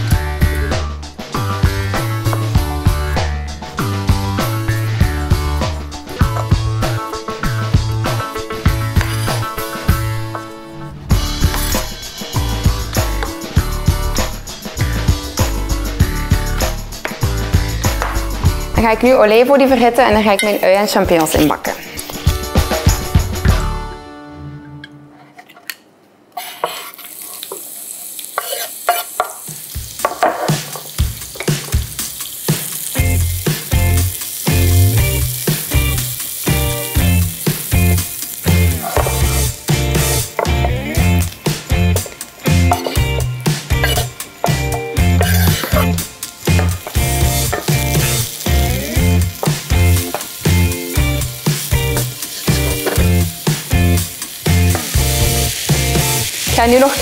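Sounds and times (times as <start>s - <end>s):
background music with steady beat: 0.0s - 20.4s, 21.0s - 25.1s, 29.5s - 57.0s
vegetables sizzling in frying pan: 8.1s - 10.1s, 26.4s - 57.0s.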